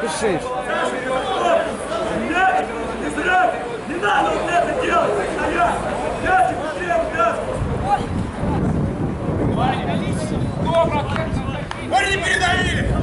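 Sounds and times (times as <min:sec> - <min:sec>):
people shouting and talking: 0:00.0 - 0:13.0
wind rumbling on microphone: 0:06.3 - 0:13.0.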